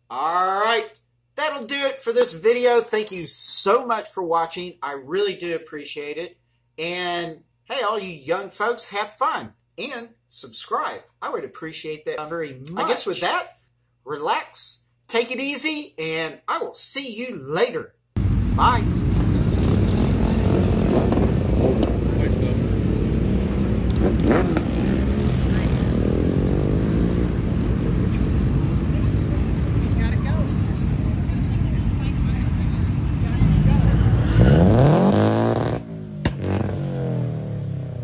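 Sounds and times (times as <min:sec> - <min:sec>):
low rumble of running cars: 0:18.2 - 0:38.0
car engine revving hard: 0:19.0 - 0:29.5, 0:33.4 - 0:38.0.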